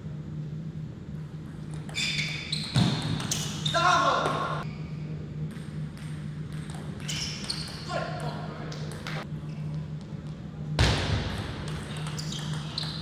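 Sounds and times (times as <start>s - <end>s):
low hum in hall: 0.0s - 13.0s
short high squeaks: 1.9s - 4.0s, 7.0s - 8.0s
player shouting: 3.7s - 4.6s.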